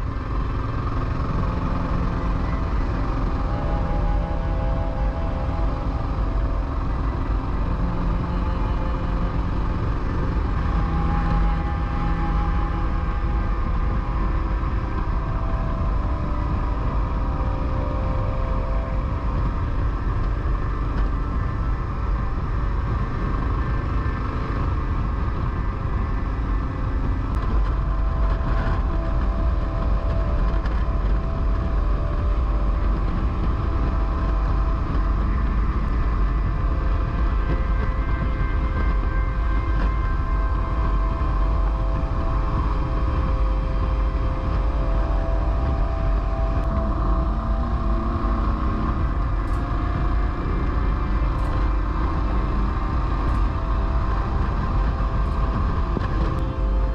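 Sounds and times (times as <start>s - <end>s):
motorcycle engine running: 0.0s - 56.9s
road rumble: 0.0s - 56.9s
wind rush on microphone: 0.0s - 56.9s.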